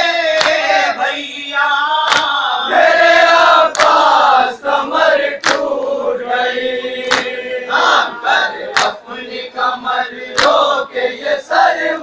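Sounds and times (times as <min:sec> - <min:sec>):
group chanting a lament: 0:00.0 - 0:12.0
hands slapping chests: 0:00.4 - 0:00.7, 0:02.1 - 0:02.4, 0:03.6 - 0:04.1, 0:05.4 - 0:05.8, 0:07.0 - 0:07.4, 0:08.7 - 0:09.0, 0:10.3 - 0:10.7.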